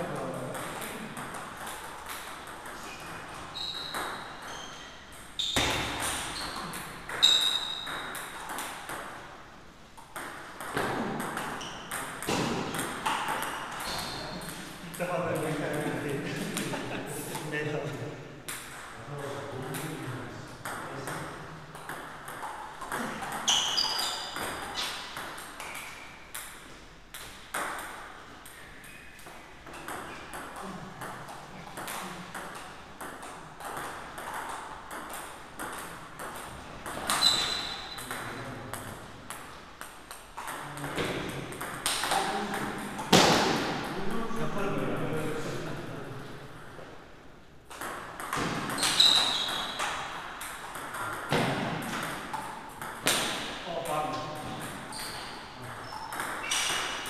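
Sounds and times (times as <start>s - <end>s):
ping pong ball hitting paddles: 0.0s - 17.5s, 18.5s - 44.2s, 47.7s - 57.0s.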